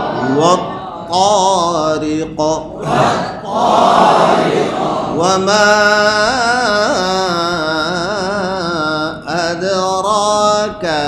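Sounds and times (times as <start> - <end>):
man chanting recitation: 0.0 - 3.4, 5.0 - 11.0.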